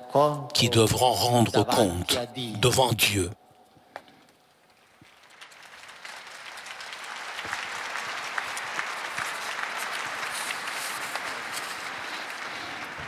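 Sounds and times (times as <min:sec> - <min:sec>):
large crowd applauding: 0:04.8 - 0:13.0.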